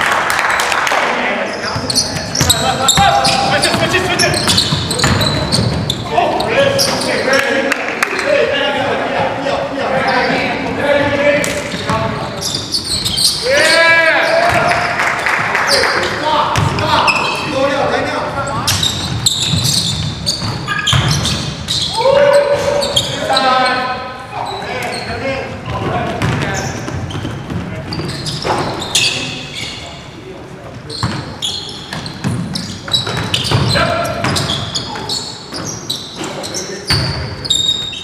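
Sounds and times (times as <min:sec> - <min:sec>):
players calling out: 0:01.4 - 0:30.1
basketball bouncing on wooden court: 0:01.8 - 0:06.0, 0:16.5 - 0:16.9, 0:18.5 - 0:21.8, 0:25.6 - 0:28.6, 0:31.9 - 0:35.8.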